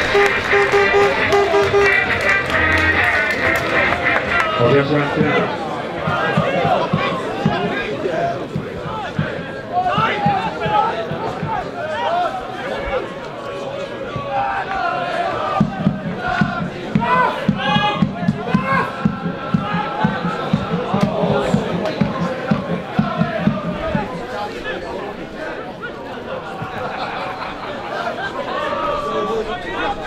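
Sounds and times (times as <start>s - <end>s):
steady drum beat: 0.0s - 4.3s, 5.0s - 11.7s, 15.4s - 24.2s
football crowd chanting: 0.0s - 30.0s.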